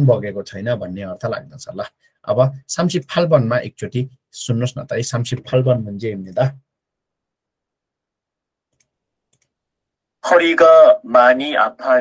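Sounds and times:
faint clicks: 8.7s - 9.6s.

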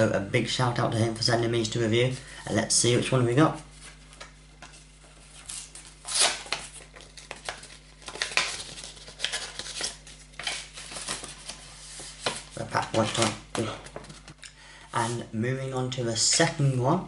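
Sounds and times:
paper rustling and crinkling: 3.7s - 14.4s.

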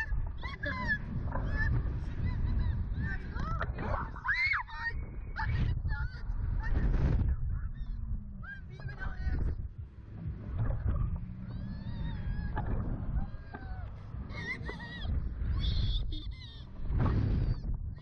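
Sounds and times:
wind rumble on microphone: 0.0s - 18.0s
riders' high-pitched cries: 13.3s - 16.8s.

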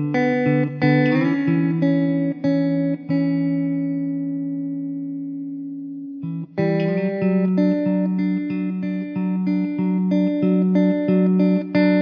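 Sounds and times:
plucked guitar music: 0.0s - 12.0s.

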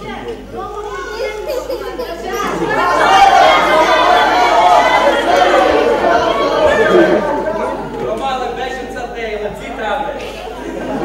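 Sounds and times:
babble of overlapping voices: 0.0s - 11.0s.

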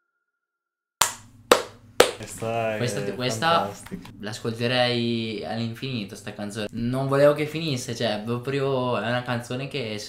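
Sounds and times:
sharp hand claps: 1.0s - 2.4s.

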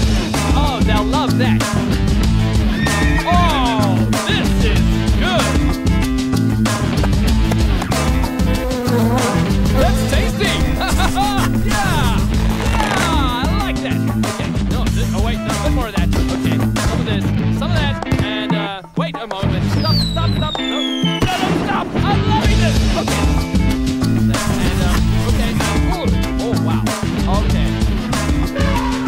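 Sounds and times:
background music: 0.0s - 29.0s
cartoon bee buzzing: 8.0s - 13.4s.

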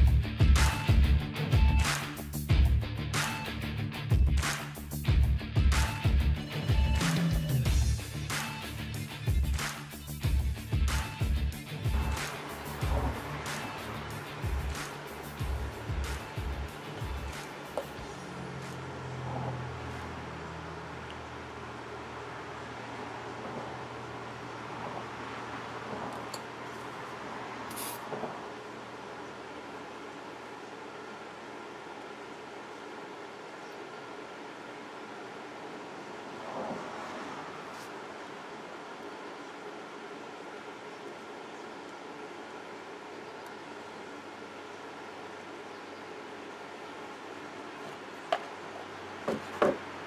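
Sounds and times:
steady background hiss: 6.4s - 50.0s
aerosol can spraying: 27.7s - 28.3s
plastic cup knocks: 49.3s - 49.8s.

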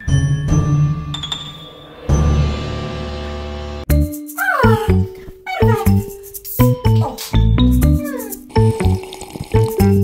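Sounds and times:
bouncy children's music: 3.9s - 9.0s.

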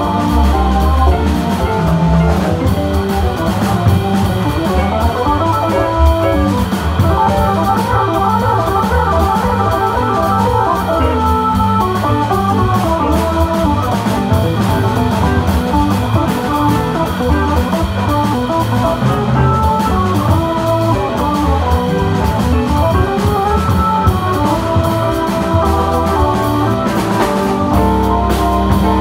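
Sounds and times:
drum kit with cymbals: 0.0s - 29.0s
electric guitar: 0.0s - 29.0s
organ: 0.0s - 29.0s.

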